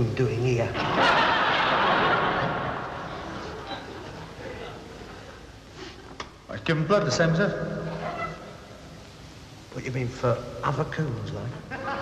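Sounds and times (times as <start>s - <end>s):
studio audience laughing: 0.8s - 5.5s, 11.7s - 12.0s.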